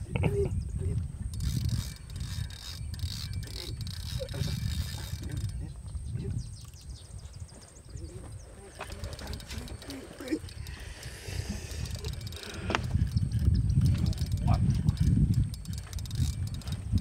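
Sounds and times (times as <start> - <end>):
wind rumbling on microphone: 0.0 - 17.0
fishing reel clicking: 1.1 - 5.9, 8.8 - 17.0.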